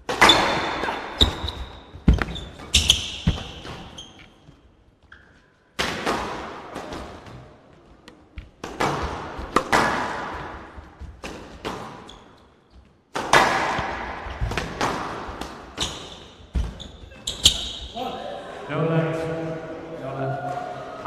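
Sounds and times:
squash ball hitting rackets and walls: 0.0 - 4.4, 5.2 - 17.9.

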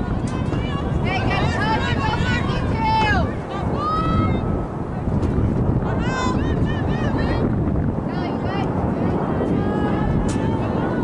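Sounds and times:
players shouting: 0.0 - 4.5
wind buffeting microphone: 0.0 - 11.0.

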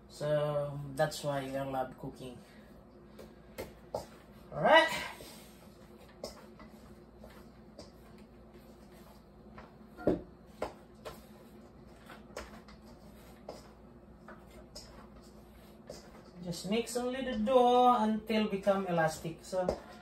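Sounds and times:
hands kneading dough in bowl: 5.6 - 20.0.

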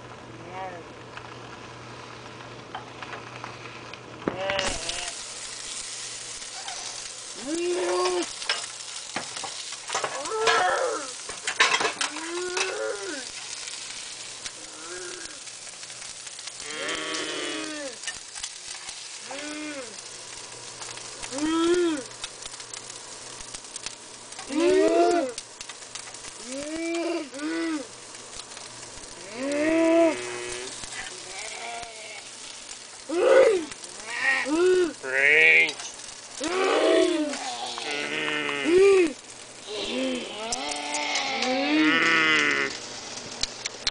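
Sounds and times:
food sizzling in frying pan: 0.0 - 43.9
person moaning: 6.8 - 8.3, 10.1 - 11.2, 12.1 - 13.3, 14.6 - 15.5, 16.6 - 18.0, 19.2 - 20.0, 21.3 - 22.1, 24.5 - 25.4, 26.4 - 28.0, 29.2 - 32.3, 33.0 - 35.8, 36.4 - 42.8.

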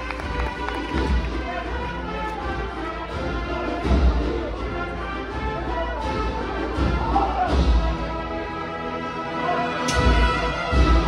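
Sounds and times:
brass band playing a march: 0.0 - 11.0.

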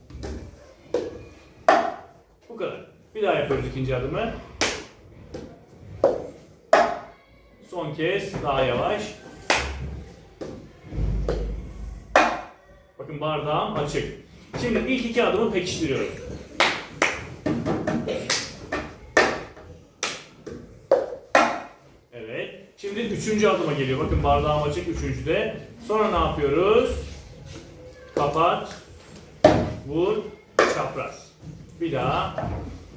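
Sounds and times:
hand claps: 16.6 - 17.4.

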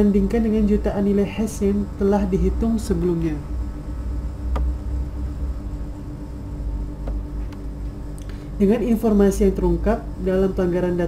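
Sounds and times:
constant low hum: 0.0 - 11.0
low background rumble: 0.0 - 11.0.

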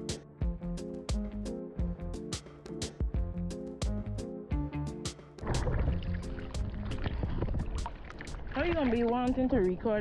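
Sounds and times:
music with regular beat: 0.0 - 8.4
water sloshing and splashing: 5.4 - 10.0.

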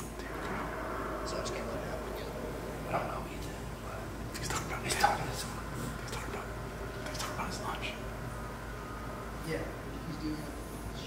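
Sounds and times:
people whispering: 0.0 - 8.2.

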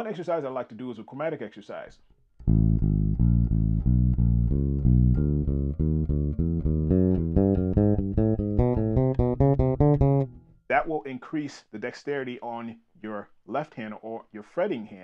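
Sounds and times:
plucked electric bass notes: 2.4 - 10.6.

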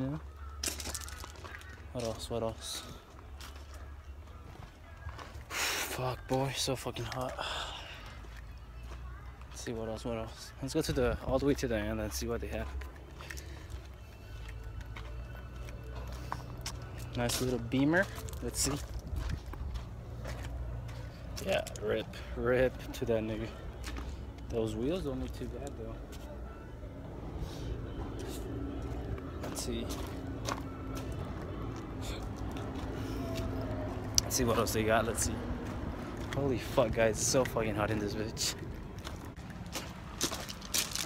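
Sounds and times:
footsteps: 0.5 - 11.1, 12.4 - 41.0.

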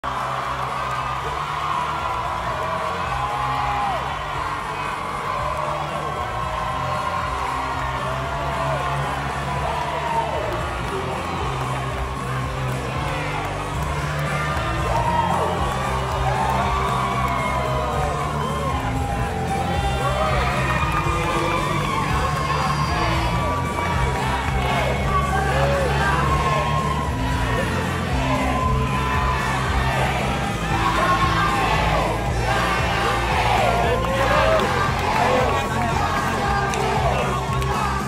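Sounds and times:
crowd cheering and shouting: 0.0 - 38.0
music with steady bass line: 0.0 - 38.0.

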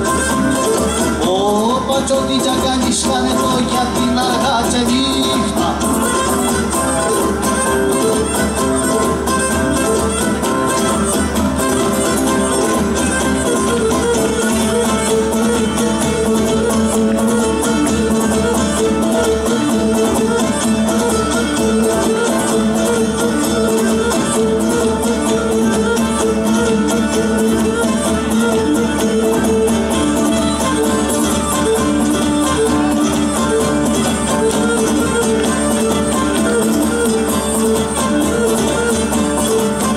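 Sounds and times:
bowed lyra melody: 0.0 - 39.9
instrumental folk dance music: 0.0 - 39.9
strummed lutes: 0.0 - 39.9.

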